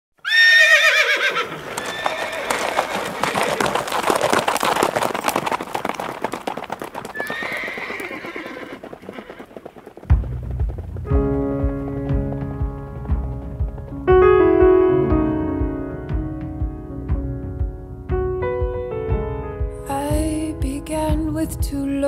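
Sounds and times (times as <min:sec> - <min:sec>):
horse whinnying: 0:00.2 - 0:10.0
galloping hoofbeats: 0:00.3 - 0:18.3.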